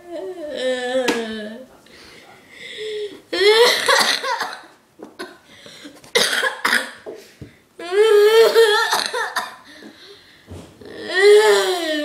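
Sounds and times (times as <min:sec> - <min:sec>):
child crying: 0:00.0 - 0:01.7, 0:07.8 - 0:09.3, 0:10.9 - 0:12.0.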